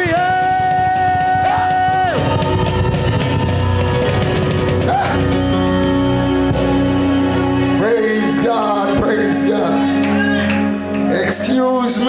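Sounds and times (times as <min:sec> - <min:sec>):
band playing: 0:00.0 - 0:12.0.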